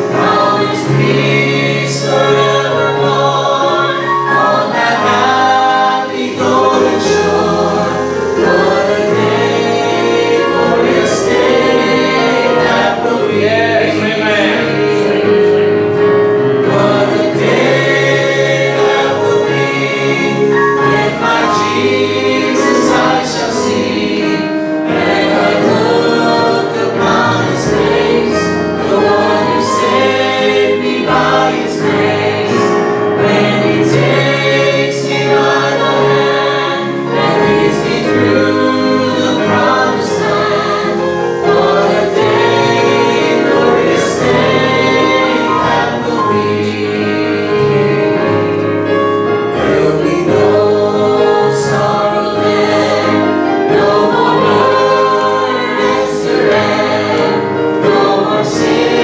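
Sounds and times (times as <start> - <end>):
group singing gospel song: 0.0 - 59.0
keyboard: 0.0 - 59.0.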